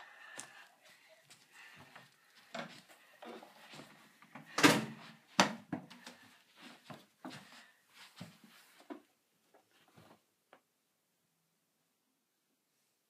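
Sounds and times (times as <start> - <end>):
hurried footsteps: 0.0 - 9.0.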